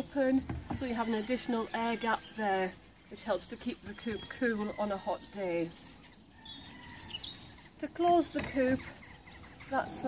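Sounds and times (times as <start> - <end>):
faint background noise: 0.0 - 10.0
songbird chirping: 0.0 - 10.0.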